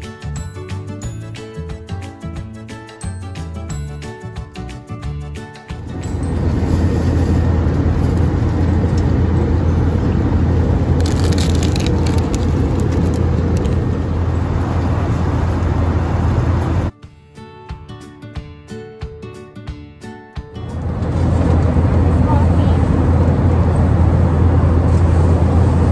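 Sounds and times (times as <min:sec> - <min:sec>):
music: 0:00.0 - 0:09.0, 0:16.9 - 0:23.2
airliner cabin drone: 0:05.8 - 0:16.9, 0:20.7 - 0:25.9
plastic wrapper crinkling: 0:10.9 - 0:14.0.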